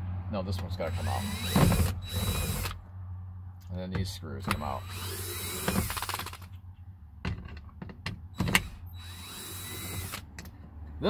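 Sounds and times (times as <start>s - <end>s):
drill motor whining: 0.8s - 2.8s, 4.4s - 6.4s, 8.4s - 10.2s
drill clicks and knocks: 0.9s - 2.8s, 3.9s - 6.5s, 7.2s - 10.6s.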